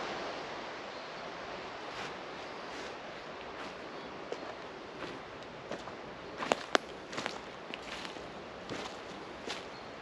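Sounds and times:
footsteps crunching on dry leaves: 1.9s - 9.8s.

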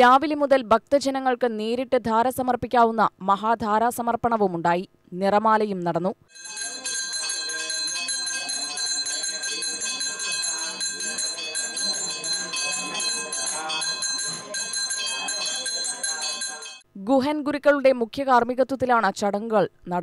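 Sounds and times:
temple bells ringing rapidly: 6.3s - 16.8s
murmur of people talking: 6.4s - 16.8s.

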